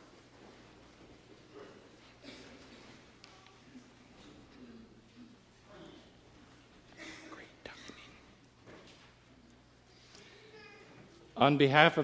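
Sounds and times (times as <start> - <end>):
faint low speech: 1.5 - 8.4.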